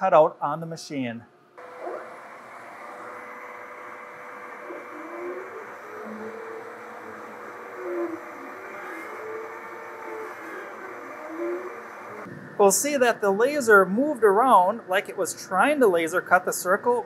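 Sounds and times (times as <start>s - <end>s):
exhaust fan running: 1.6s - 17.0s
stepper motors hooting tones: 1.6s - 17.0s.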